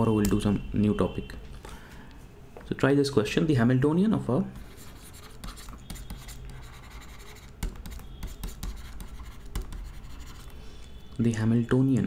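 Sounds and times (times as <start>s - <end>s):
stylus scratching on tablet: 4.6s - 10.6s.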